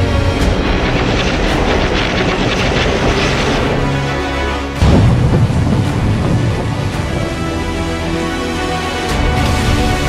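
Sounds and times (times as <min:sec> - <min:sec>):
rapid fluttering crackle: 0:00.0 - 0:07.7.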